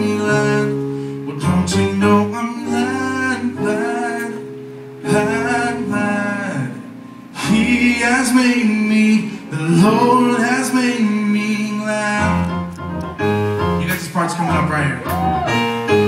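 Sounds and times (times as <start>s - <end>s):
man singing gospel song: 0.0s - 12.6s
keyboard chords: 0.0s - 16.0s.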